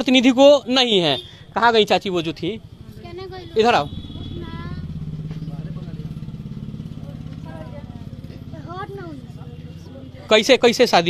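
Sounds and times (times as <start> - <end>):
faint voices: 2.6 - 11.0
small engine running: 2.7 - 11.0.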